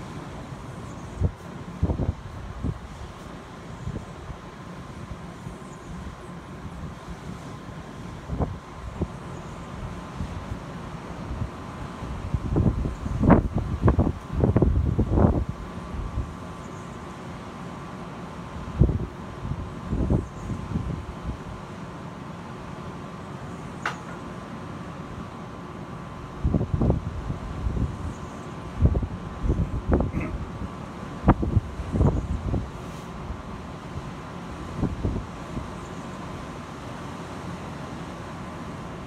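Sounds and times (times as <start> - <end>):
wind buffeting microphone: 1.1 - 3.2, 8.1 - 9.2, 11.2 - 16.4, 18.6 - 21.6, 26.4 - 33.5.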